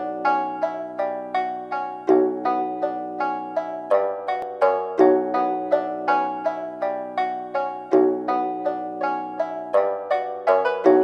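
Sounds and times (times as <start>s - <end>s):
plucked-string trap beat melody: 0.0s - 11.0s.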